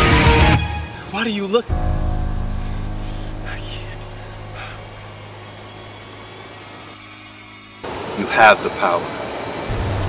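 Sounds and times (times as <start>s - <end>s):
sudden loud sound: 1.7s - 6.4s
low steady drone: 1.7s - 8.2s
brief breathy sound: 2.5s - 5.2s.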